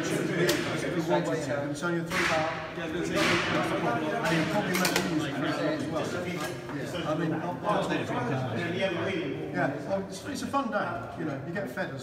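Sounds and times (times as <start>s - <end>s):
indistinct voices in echoing room: 0.0s - 12.0s.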